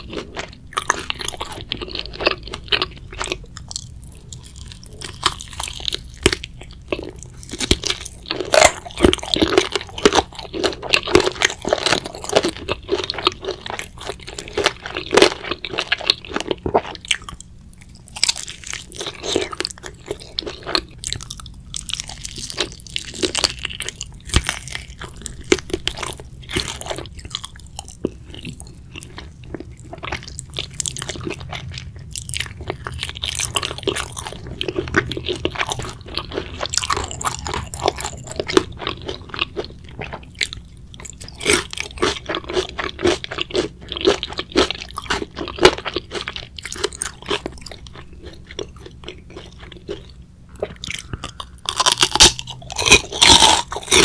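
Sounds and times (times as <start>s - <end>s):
crunching fried chicken: 0.0s - 54.0s
wet chewing: 0.0s - 54.0s.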